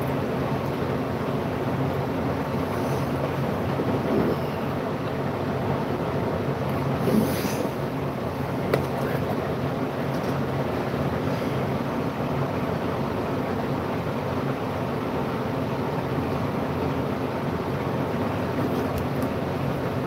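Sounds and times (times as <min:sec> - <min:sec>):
machine hum with rushing noise: 0:00.0 - 0:20.0.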